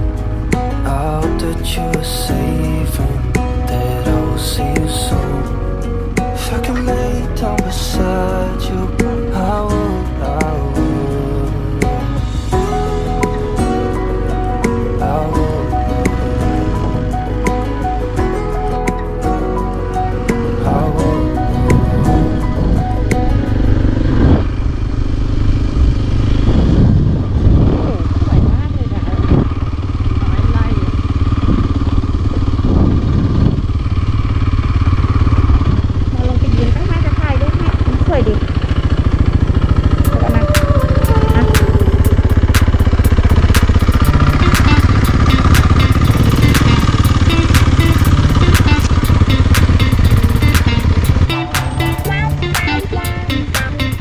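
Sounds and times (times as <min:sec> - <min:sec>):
music playing: 0:00.0 - 0:24.4, 0:39.9 - 0:54.0
motorcycle engine running: 0:00.0 - 0:54.0.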